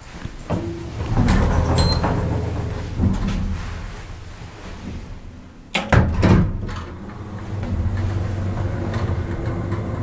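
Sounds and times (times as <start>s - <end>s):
elevator car hum: 0.5s - 4.3s, 6.6s - 10.0s.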